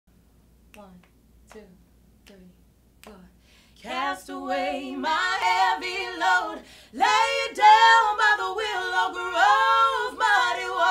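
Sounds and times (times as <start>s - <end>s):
finger snaps: 3.0s - 3.2s.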